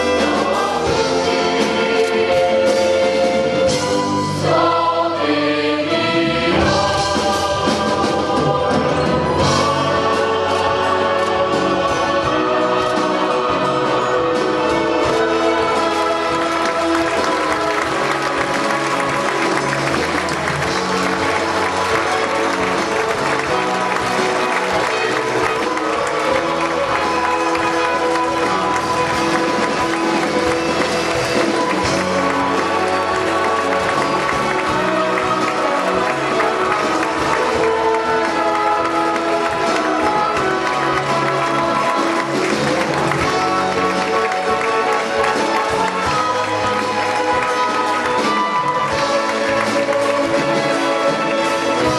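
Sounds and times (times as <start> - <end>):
symphony orchestra playing: 0.0 - 51.9
audience applause: 9.3 - 51.9.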